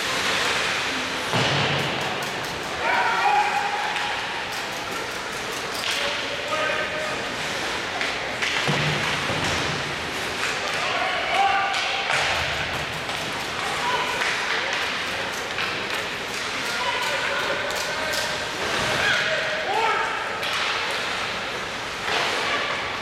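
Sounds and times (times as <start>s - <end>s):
sticks and puck clacking: 0.0s - 6.9s, 7.8s - 19.3s, 20.3s - 22.5s
steady rink noise: 0.0s - 23.0s.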